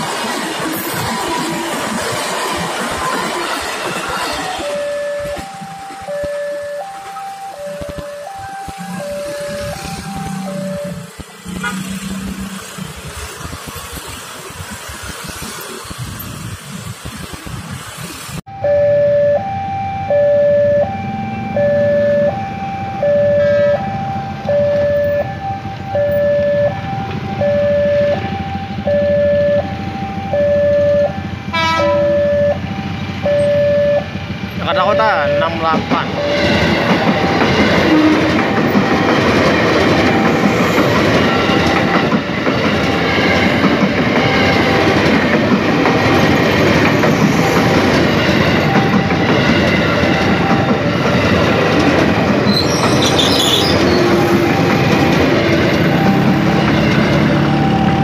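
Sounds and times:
electric train rumbling past: 0.0 - 58.0
two-tone crossing alarm chime: 4.4 - 12.6, 18.5 - 42.1, 47.0 - 52.1, 53.7 - 58.0.

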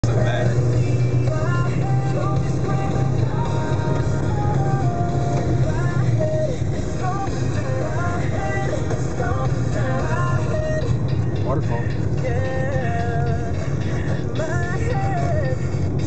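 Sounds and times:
car cabin drone: 0.0 - 16.0
music with held notes: 0.0 - 16.0.

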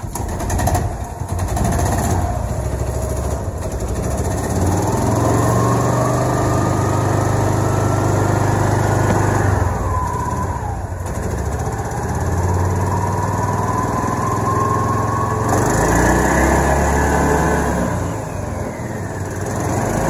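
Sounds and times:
small gasoline engine revving: 0.0 - 20.0.

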